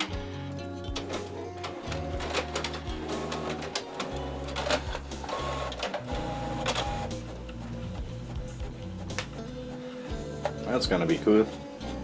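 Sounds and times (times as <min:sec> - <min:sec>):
background music with bass line: 0:00.0 - 0:12.0
printer clicking and whirring: 0:01.0 - 0:07.6.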